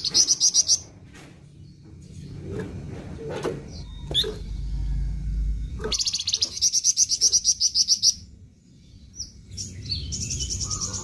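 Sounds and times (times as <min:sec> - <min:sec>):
low rumble: 0:01.5 - 0:06.0
songbird trilling: 0:05.7 - 0:11.0.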